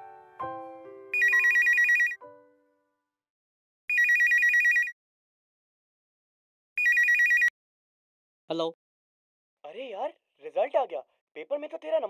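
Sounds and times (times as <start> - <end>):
telephone ringing with warbling trill: 1.2 - 2.2, 3.9 - 5.0, 6.8 - 7.5.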